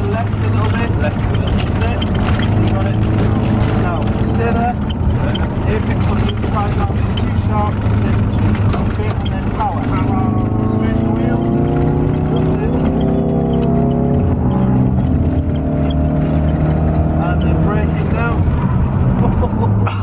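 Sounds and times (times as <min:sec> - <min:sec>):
car engine accelerating: 0:00.0 - 0:20.0.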